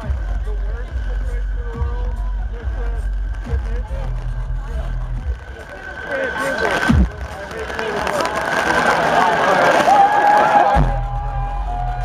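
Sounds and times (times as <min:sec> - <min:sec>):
heavy steady bass: 0:00.0 - 0:08.6, 0:10.7 - 0:12.0
loud electronic music: 0:00.0 - 0:12.0.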